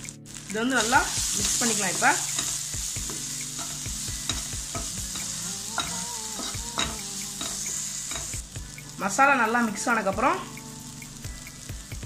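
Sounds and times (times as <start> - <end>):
masala sizzling in oil: 0.0 - 12.0.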